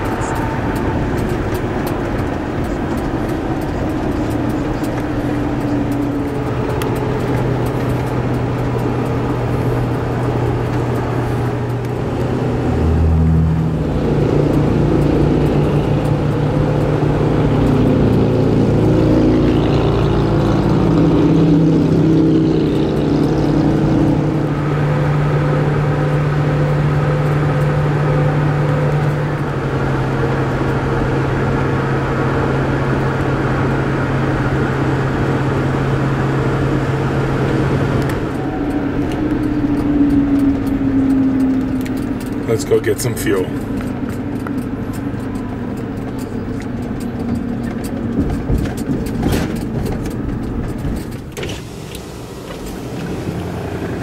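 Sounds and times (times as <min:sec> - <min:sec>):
diesel engine drone: 0:00.0 - 0:54.0
road noise: 0:00.0 - 0:54.0.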